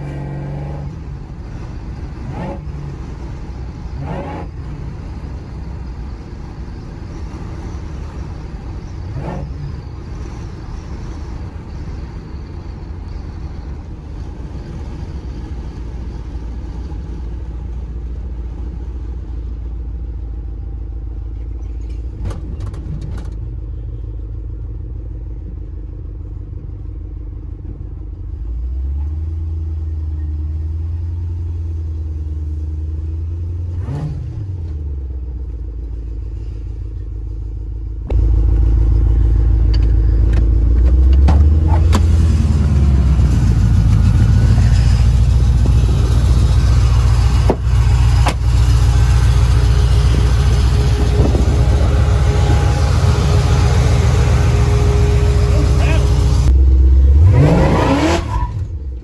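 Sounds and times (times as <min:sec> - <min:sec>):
engine rumbling: 0:00.0 - 0:59.0.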